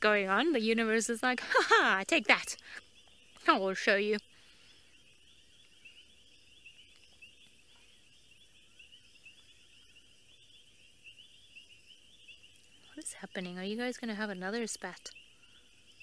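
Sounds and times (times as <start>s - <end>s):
insects chirping: 0.0s - 16.0s.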